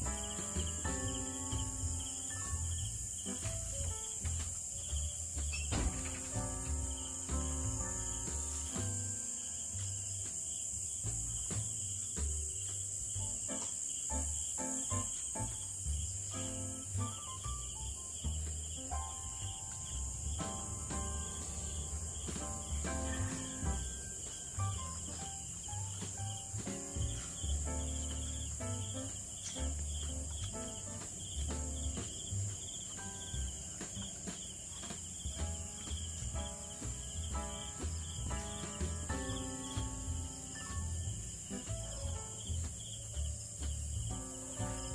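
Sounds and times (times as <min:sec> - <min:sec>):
crickets chirping: 0:00.0 - 0:44.9
low thumps: 0:00.0 - 0:44.9
instrumental melody of held notes: 0:13.1 - 0:33.9, 0:34.8 - 0:43.1.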